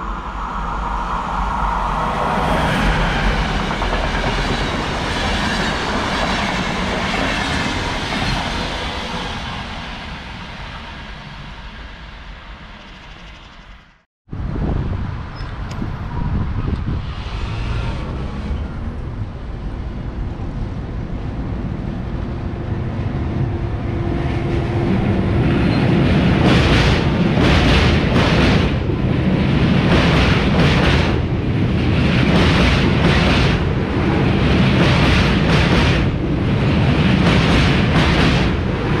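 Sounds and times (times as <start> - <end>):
passing train rumble: 0.0 - 39.0.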